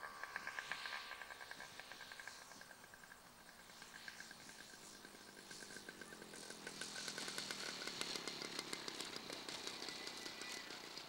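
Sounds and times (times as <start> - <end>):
small model engine running: 0.0 - 11.0.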